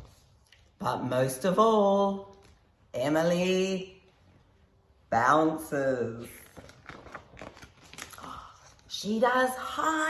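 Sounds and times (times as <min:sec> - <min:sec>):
paper pages rustling: 0:06.4 - 0:08.7.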